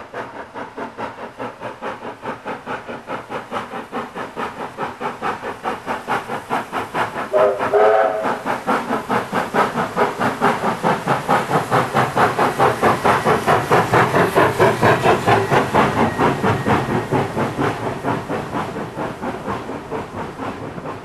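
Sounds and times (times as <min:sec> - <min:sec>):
steam locomotive exhaust beating: 0:00.0 - 0:21.0
steam whistle blast: 0:07.3 - 0:08.4.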